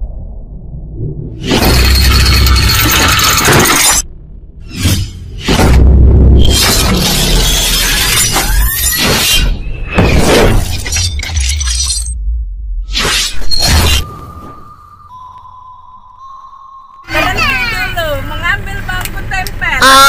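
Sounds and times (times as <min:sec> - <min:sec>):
deep rumble: 0:00.0 - 0:07.6
music: 0:14.0 - 0:18.6.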